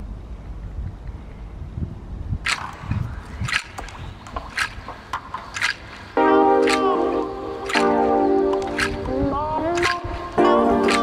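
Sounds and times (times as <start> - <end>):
wind rumble on microphone: 0.0 - 5.1, 8.5 - 11.0.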